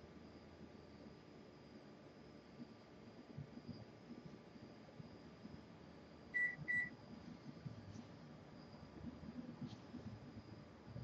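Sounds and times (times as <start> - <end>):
short electronic beeps: 6.4 - 6.9.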